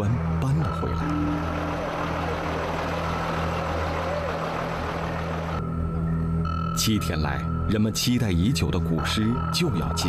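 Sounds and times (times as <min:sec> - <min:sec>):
road noise: 0:01.3 - 0:05.6.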